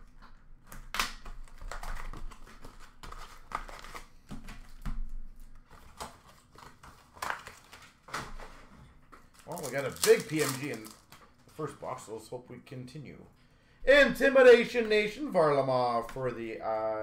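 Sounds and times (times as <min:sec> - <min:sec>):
foil packs crinkling: 0:01.2 - 0:12.0.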